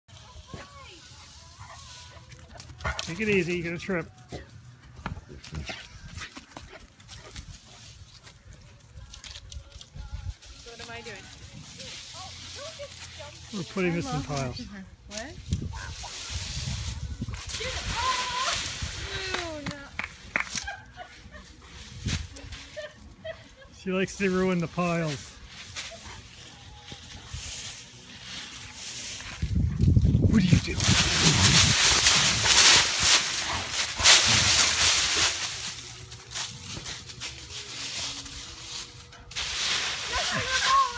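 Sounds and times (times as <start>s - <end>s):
paws rustling in leaves: 0.1s - 19.9s, 20.7s - 40.9s.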